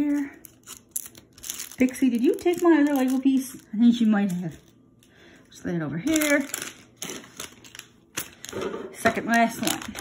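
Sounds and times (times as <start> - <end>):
foil bag crinkling: 0.0 - 5.4, 6.0 - 10.0.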